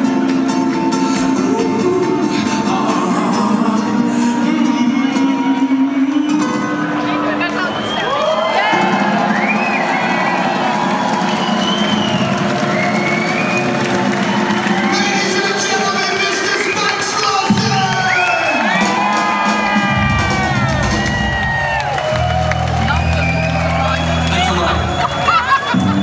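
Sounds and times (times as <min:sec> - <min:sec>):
crowd cheering and whooping: 0:07.0 - 0:26.0
band holding notes: 0:08.5 - 0:26.0.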